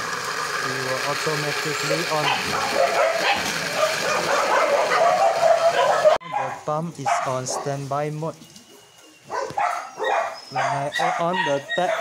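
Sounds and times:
electric water pump motor running: 0.0 - 6.2
dog barking: 2.2 - 7.8, 8.8 - 12.0.

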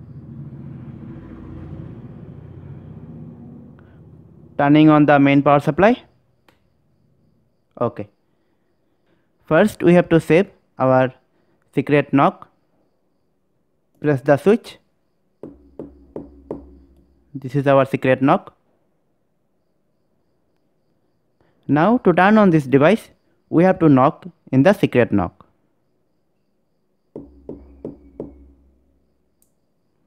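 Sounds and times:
low hum: 0.0 - 4.6, 15.4 - 17.5, 27.2 - 29.6
knocks with short ring: 15.4 - 17.3, 27.2 - 29.2.

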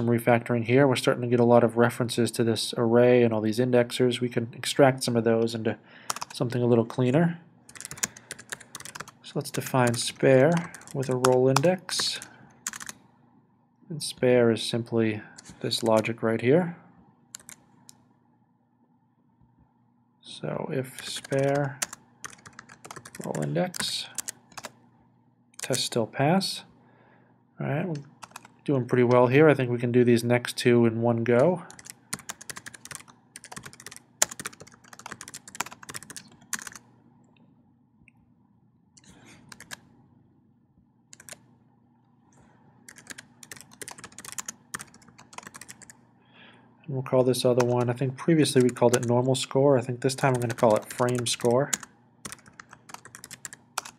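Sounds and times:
keyboard keystrokes: 7.7 - 9.1, 17.4 - 17.6, 21.0 - 23.4, 31.7 - 36.8, 39.5 - 39.8, 41.2 - 41.4, 42.9 - 46.0, 51.7 - 53.9.

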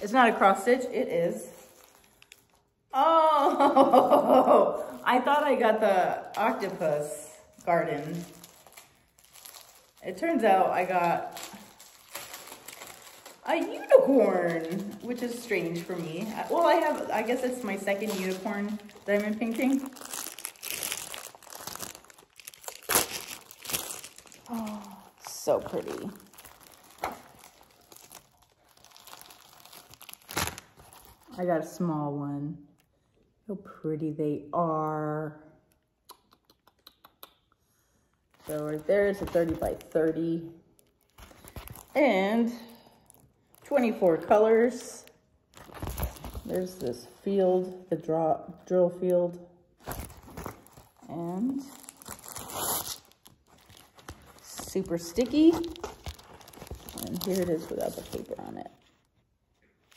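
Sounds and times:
plastic packaging crinkling: 0.0 - 2.8, 3.7 - 31.4, 38.3 - 47.2, 49.8 - 59.9.

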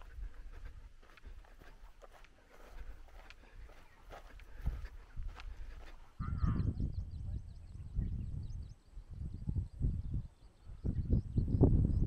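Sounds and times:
footsteps on sand: 0.0 - 6.3
birds chirping: 0.0 - 12.0
wind rumbling on microphone: 0.0 - 12.0.

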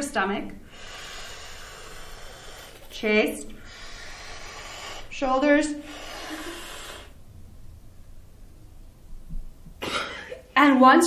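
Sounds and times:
slow in-breath hiss: 0.6 - 7.4.

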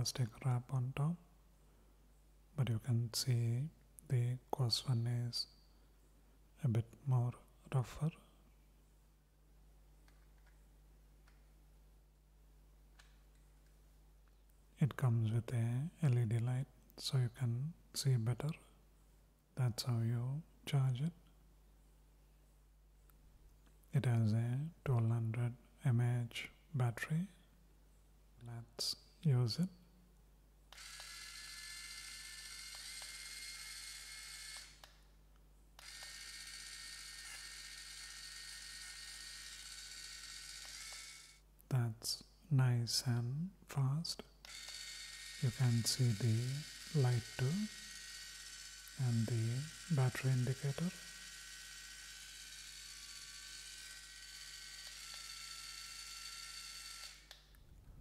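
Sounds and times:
electric callus remover whining: 30.7 - 35.0, 35.8 - 41.4, 44.4 - 57.5.

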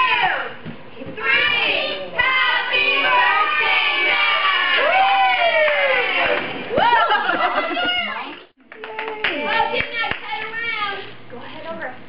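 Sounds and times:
hand claps: 8.3 - 10.5.

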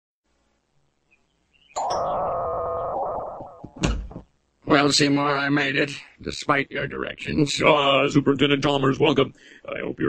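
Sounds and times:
held pitched tone: 1.8 - 3.8.

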